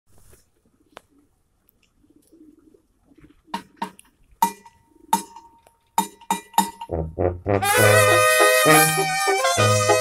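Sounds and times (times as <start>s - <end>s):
low bird cooing: 2.0s - 3.7s.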